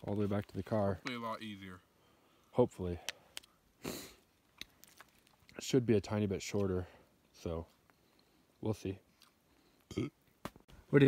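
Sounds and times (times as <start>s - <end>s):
person sniffing: 3.8s - 4.3s.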